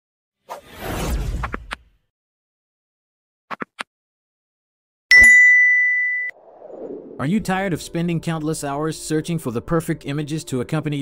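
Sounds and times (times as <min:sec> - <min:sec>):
notification bell chime: 0:05.1 - 0:06.3.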